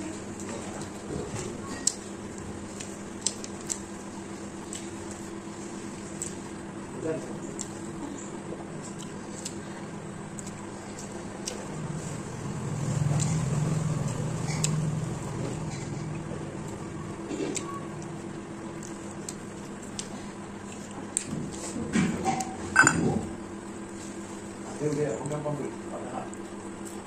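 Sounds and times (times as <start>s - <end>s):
person chewing: 0.4s - 6.7s, 7.4s - 21.8s.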